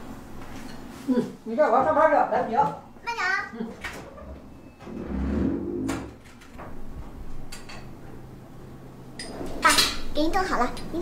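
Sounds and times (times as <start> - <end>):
door opening and shutting: 3.8 - 7.6
low rumbling: 4.8 - 6.2.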